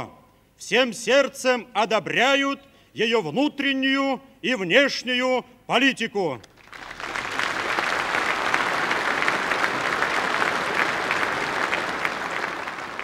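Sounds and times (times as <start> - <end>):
large audience applauding: 6.5 - 13.0.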